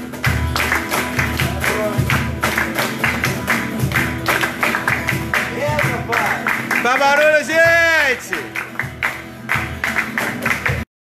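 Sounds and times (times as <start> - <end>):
strummed acoustic guitar: 0.0 - 10.8
group clapping in rhythm: 0.0 - 10.9.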